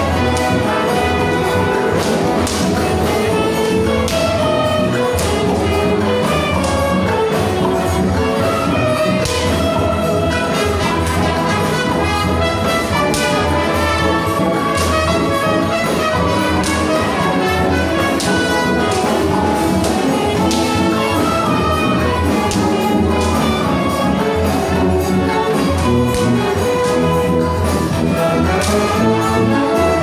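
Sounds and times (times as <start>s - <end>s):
brass wind band playing march: 0.0s - 30.0s.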